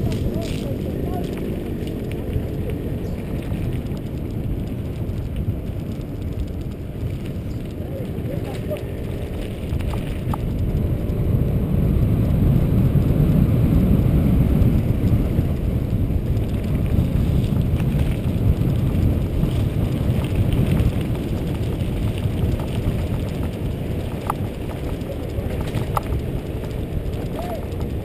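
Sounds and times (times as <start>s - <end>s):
tyres on loose gravel: 0.0s - 28.0s
wind buffeting microphone: 0.0s - 28.0s.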